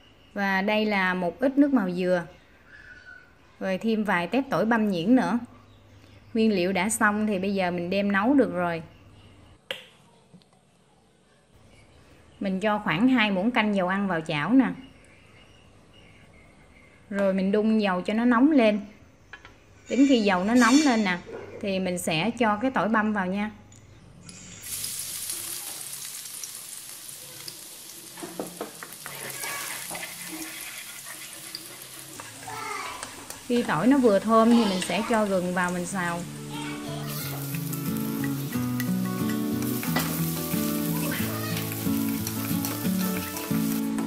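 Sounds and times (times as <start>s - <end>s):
garlic sizzling in hot oil: 24.4s - 44.0s
wooden spatula scraping pan: 28.3s - 33.4s.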